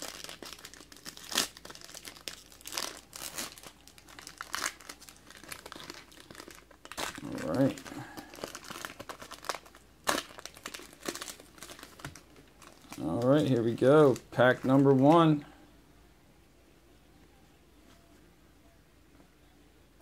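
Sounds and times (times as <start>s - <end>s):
foil wrappers crinkling: 0.0s - 15.4s.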